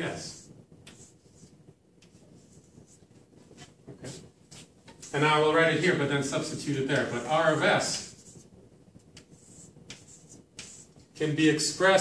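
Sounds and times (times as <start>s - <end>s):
chalk scratching on blackboard: 0.2s - 4.7s, 7.1s - 8.5s, 9.2s - 11.2s.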